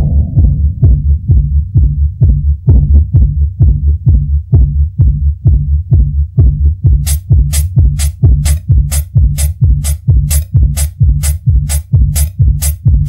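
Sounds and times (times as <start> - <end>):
kick drum and bass line: 0.0 - 13.0
bright hi-hats: 7.0 - 13.0.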